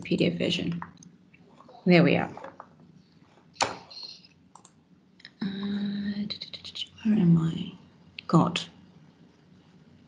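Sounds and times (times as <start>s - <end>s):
computer mouse clicks: 3.6s - 4.8s.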